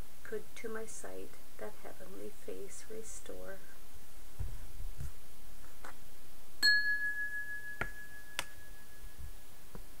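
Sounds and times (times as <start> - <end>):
bell-like chime ringing: 6.6 - 9.2.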